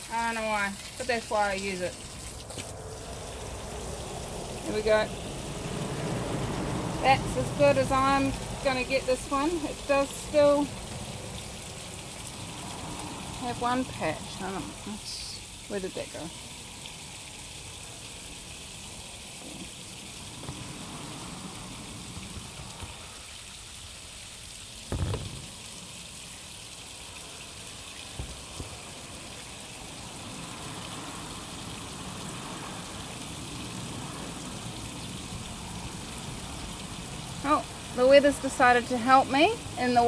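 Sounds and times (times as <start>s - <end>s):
light rain hissing: 0.0s - 40.0s.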